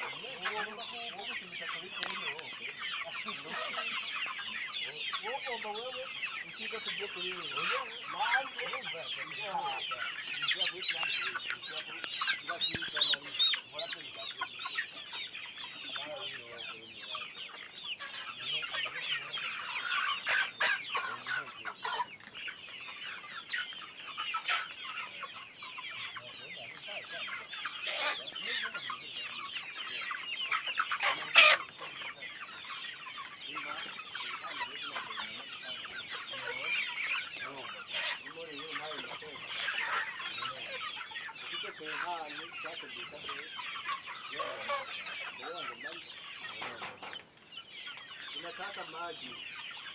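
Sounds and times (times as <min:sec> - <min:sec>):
chickens clucking: 0:00.0 - 0:49.9.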